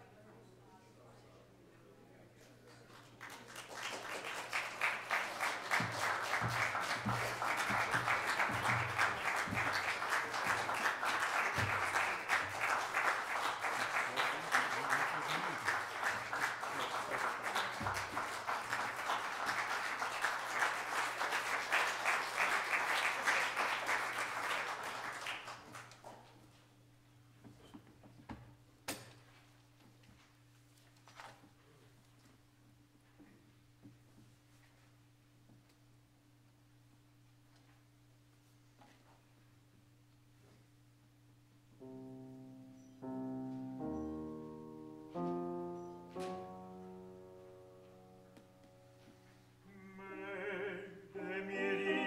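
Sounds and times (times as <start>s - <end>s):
audience applause: 2.7s - 26.1s.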